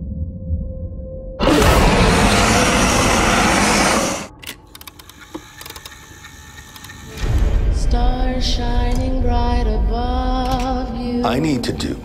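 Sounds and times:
loud burst of noise: 1.4 - 4.3.

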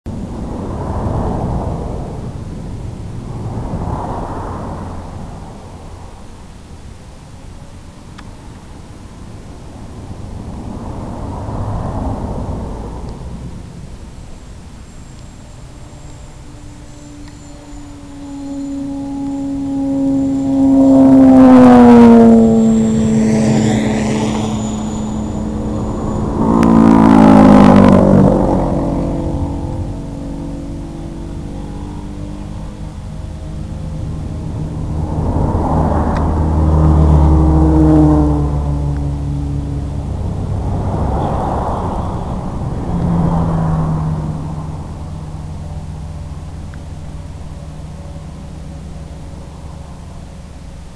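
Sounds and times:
drone motors whining: 13.8 - 50.9.

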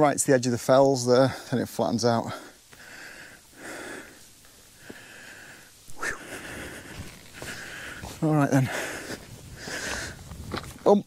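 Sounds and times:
man breathing heavily: 2.2 - 10.4.

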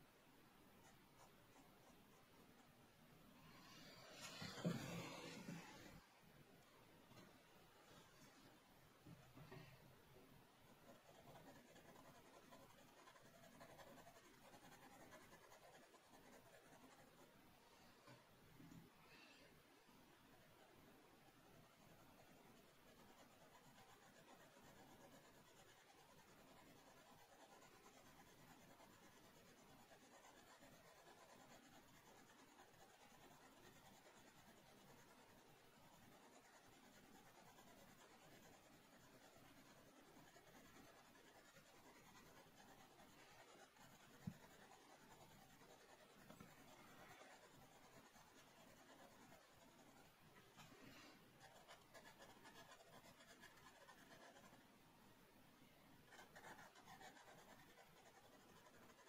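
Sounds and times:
pencil scratching on paper: 3.5 - 6.0, 10.7 - 17.3, 21.7 - 54.6, 56.0 - 59.0
soft thump: 4.3 - 5.8.

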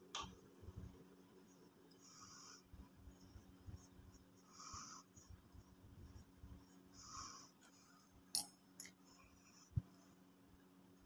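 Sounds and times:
paintbrush scratching on paper: 1.3 - 8.0.

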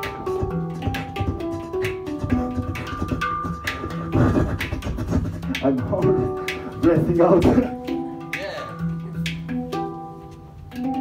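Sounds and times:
beatboxed kick and snare: 0.0 - 9.7
hang drum ringing notes: 0.0 - 11.0.

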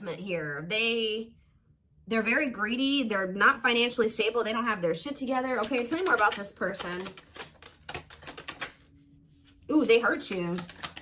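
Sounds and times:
cards being shuffled: 5.5 - 11.0.

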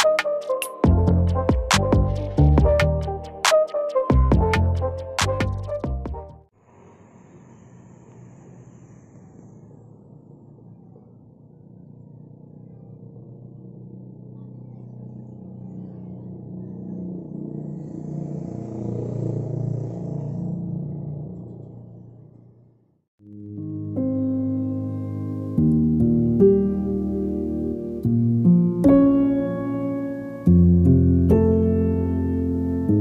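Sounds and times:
low outdoor rumble: 6.5 - 23.0.

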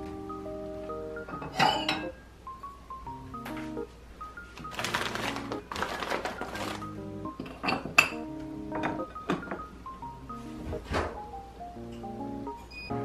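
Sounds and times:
soft melodic background music: 0.0 - 13.0
plates scraping: 1.3 - 2.1
ceramic plates clinking: 1.3 - 2.2, 7.4 - 8.2.

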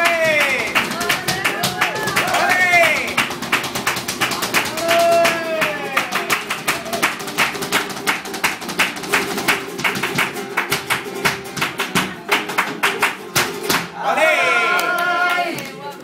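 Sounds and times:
flamenco guitar: 0.0 - 16.0.

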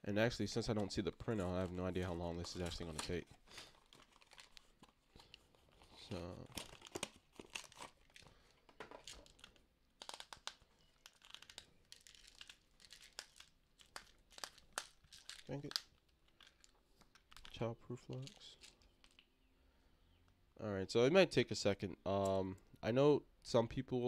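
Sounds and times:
packaging crinkling and crackling: 0.8 - 19.4.

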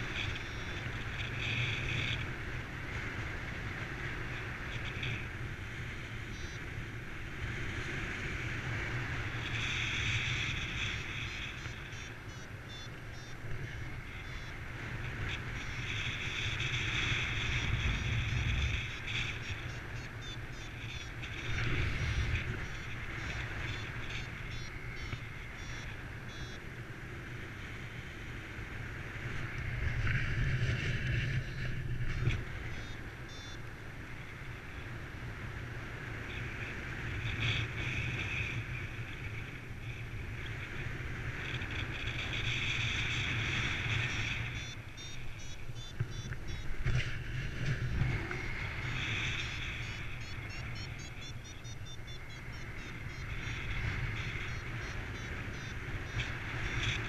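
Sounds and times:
variometer beeping: 0.0 - 2.3, 6.1 - 6.9, 9.4 - 14.6, 15.3 - 26.7, 32.6 - 33.8, 41.4 - 57.0
wind rushing over microphone: 13.6 - 33.3, 33.9 - 57.0.

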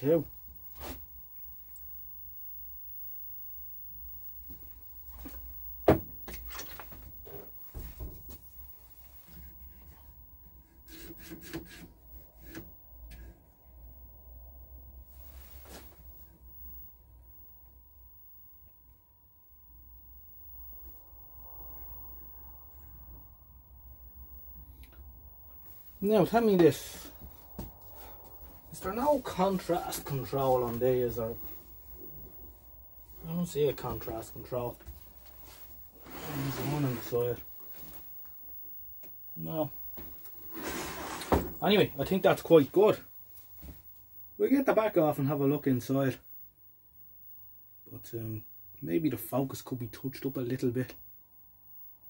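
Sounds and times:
faint steady tone: 0.0 - 11.2, 11.8 - 52.0
low hum: 12.1 - 40.5.

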